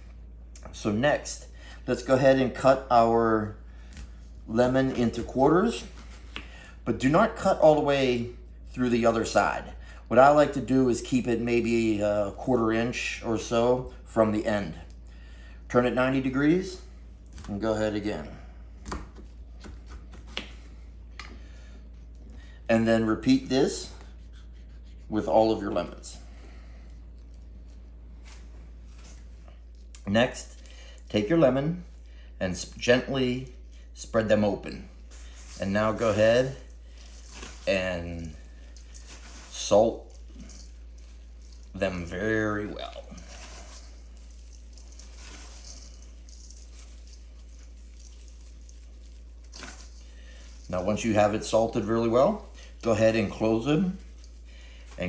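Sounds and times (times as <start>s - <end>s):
salt rubbed into lemon: 35.0s - 54.9s.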